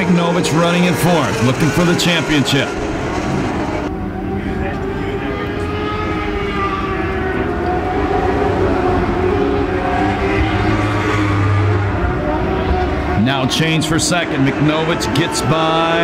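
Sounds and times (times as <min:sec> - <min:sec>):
high-revving racing engines: 0:00.0 - 0:16.0.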